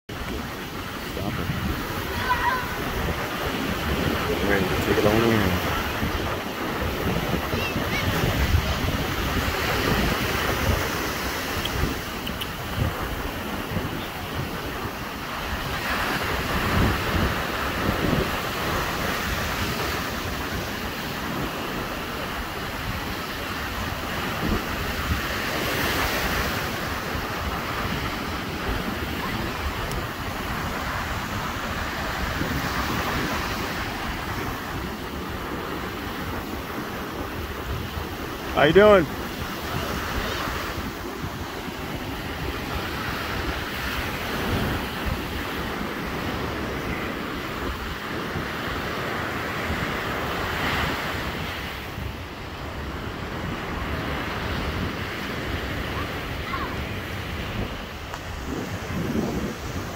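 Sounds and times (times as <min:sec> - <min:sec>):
surf washing: 0:00.1 - 0:59.9
wind on microphone: 0:00.1 - 0:59.9.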